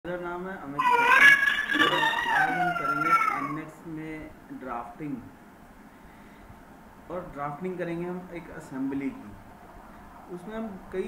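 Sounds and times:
animal calling: 0:00.7 - 0:03.7.

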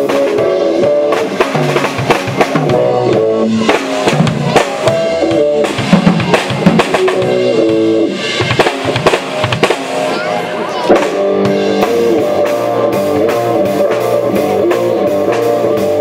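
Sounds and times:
guitar sustained notes: 0:00.0 - 0:08.5, 0:09.4 - 0:16.0
bass drum: 0:00.0 - 0:10.2, 0:10.9 - 0:16.0.

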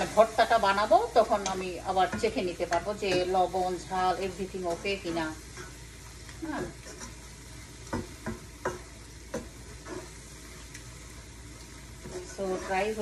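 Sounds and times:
food sizzling in a pan: 0:00.0 - 0:13.0
spatula tapping pan: 0:01.2 - 0:03.6, 0:07.8 - 0:10.8
wooden spatula stirring: 0:06.6 - 0:10.3, 0:11.8 - 0:13.0.

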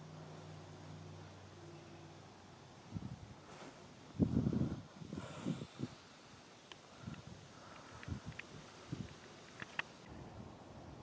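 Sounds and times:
low rumble on microphone: 0:02.8 - 0:06.0.

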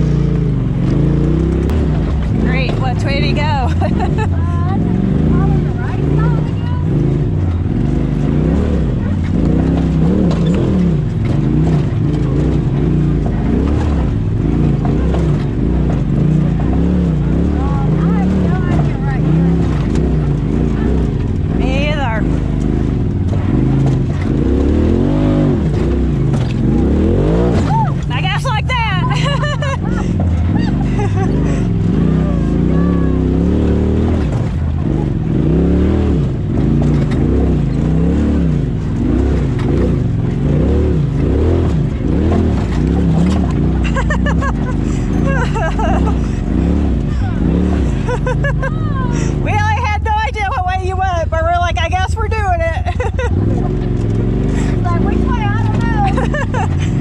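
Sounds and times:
utility vehicle engine revving: 0:00.0 - 0:57.0.

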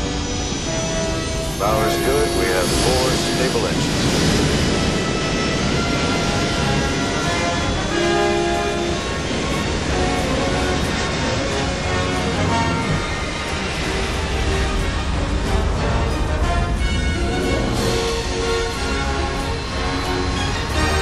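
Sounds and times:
film score music: 0:00.0 - 0:21.0
jet engines roaring: 0:00.0 - 0:21.0.

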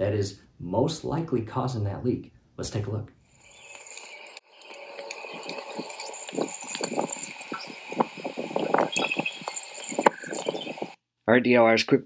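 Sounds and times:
water dripping and splattering: 0:03.4 - 0:11.0.

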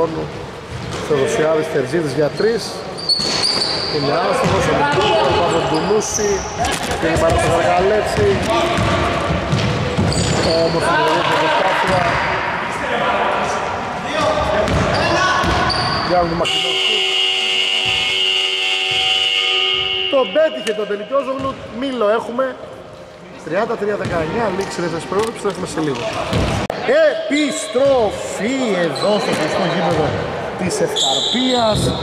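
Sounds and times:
voices echoing in a hall: 0:00.0 - 0:32.0
sneaker squeaks: 0:02.2 - 0:11.2, 0:14.1 - 0:21.9, 0:27.6 - 0:30.2, 0:30.9 - 0:32.0
basketball bouncing: 0:06.7 - 0:10.5, 0:14.2 - 0:15.8, 0:26.0 - 0:26.7
game buzzer steady tone: 0:16.5 - 0:20.4.

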